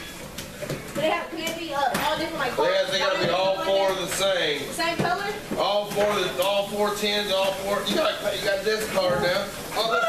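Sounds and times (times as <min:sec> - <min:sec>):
people talking: 0:01.0 - 0:10.0.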